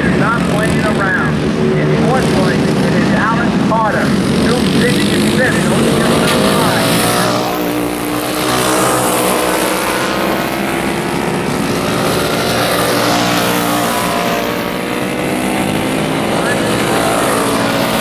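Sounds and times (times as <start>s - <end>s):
go-kart engines racing: 0.0s - 18.0s.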